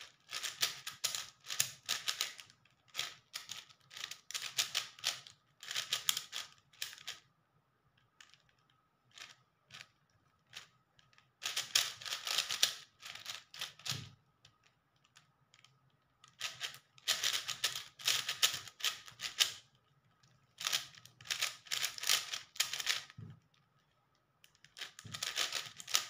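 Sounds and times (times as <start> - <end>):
speed cube clacking: 0.0 - 7.2, 11.4 - 14.0, 16.3 - 19.6, 20.6 - 23.2, 24.6 - 26.0.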